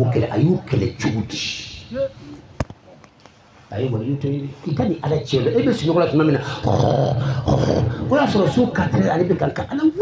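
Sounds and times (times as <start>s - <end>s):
man speaking in a deep voice: 0.0s - 2.2s, 3.7s - 10.0s.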